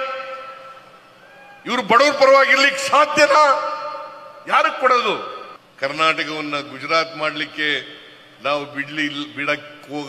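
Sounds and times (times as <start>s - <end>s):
man speaking over public address: 0.0s - 0.6s, 1.6s - 10.0s.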